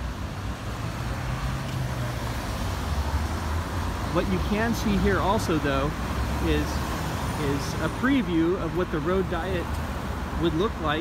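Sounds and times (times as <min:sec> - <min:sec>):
car engines in traffic: 0:00.0 - 0:11.0.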